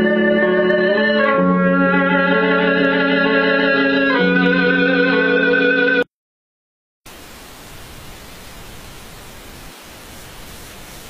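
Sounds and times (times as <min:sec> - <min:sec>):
music: 0:00.0 - 0:06.1
static hiss: 0:07.1 - 0:11.0.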